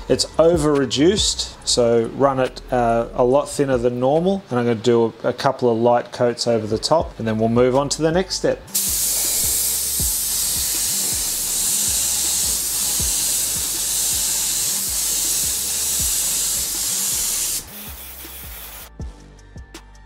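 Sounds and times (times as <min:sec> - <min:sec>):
spray gun hissing: 0:08.7 - 0:18.9.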